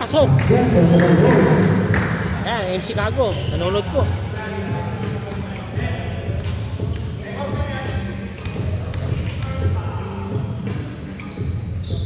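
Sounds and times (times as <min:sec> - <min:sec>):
indistinct voices echoing: 0:00.0 - 0:11.5
basketball bouncing on court floor: 0:00.4 - 0:02.4.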